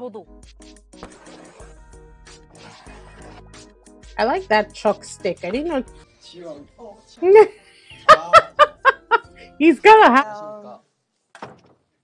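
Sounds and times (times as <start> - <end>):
woman laughing: 7.2 - 9.6.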